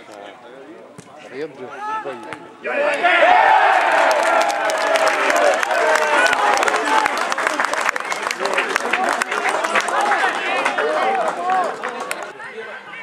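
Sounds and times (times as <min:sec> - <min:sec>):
crowd cheering and shouting: 0:01.8 - 0:13.0
hand-clapping: 0:04.1 - 0:12.3.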